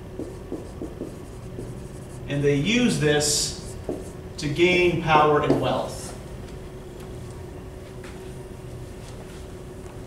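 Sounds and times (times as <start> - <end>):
marker writing on whiteboard: 0.0 - 4.2.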